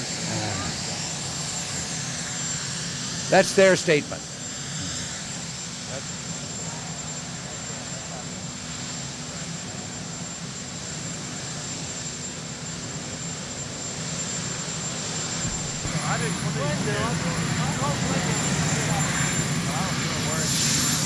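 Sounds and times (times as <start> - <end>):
helicopter turbine and rotor: 0.0 - 21.0.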